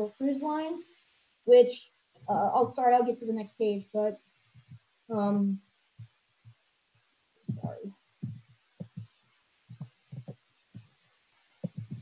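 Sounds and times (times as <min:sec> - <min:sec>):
soft low knocks from mouse and desk: 0:07.5 - 0:09.1, 0:11.6 - 0:12.0.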